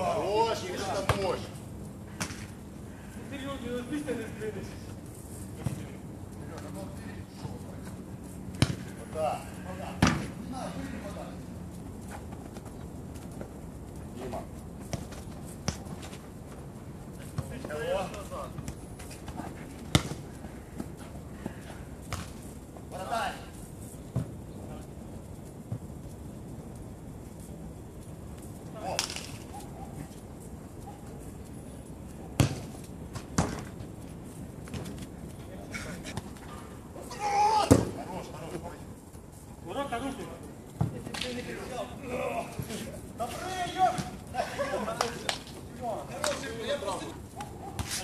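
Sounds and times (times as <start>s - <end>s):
football kick thuds: 8.6s - 8.9s, 18.5s - 20.2s, 32.4s - 33.7s
players shouting: 37.0s - 38.3s, 41.6s - 45.2s.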